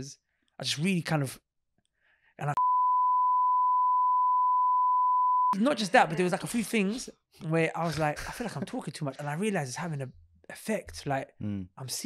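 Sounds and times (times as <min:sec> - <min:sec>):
censor bleep tone: 0:02.6 - 0:05.6
person speaking: 0:05.6 - 0:12.0.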